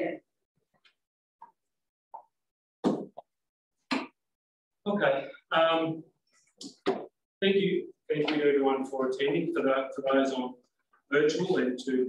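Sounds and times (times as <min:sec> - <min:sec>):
sharp knocks and pops: 0:02.1 - 0:03.3, 0:03.9 - 0:04.2, 0:06.6 - 0:07.2.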